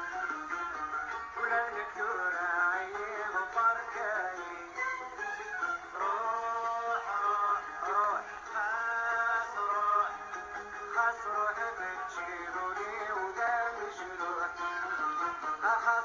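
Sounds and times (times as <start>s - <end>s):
song from vinyl record: 0.0s - 16.0s.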